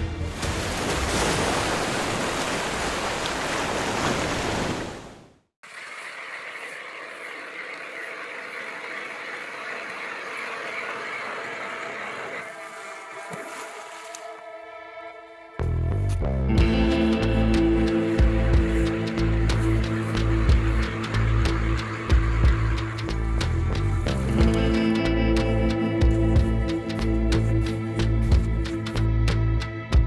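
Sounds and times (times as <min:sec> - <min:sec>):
music: 0:00.0 - 0:00.6, 0:13.7 - 0:30.0.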